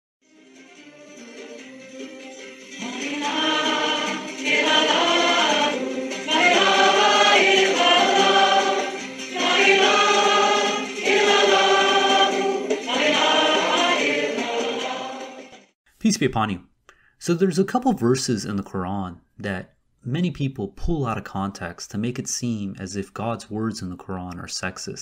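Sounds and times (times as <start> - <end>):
choir holding long notes: 0.5 - 15.7
singers breathing: 16.9 - 17.2.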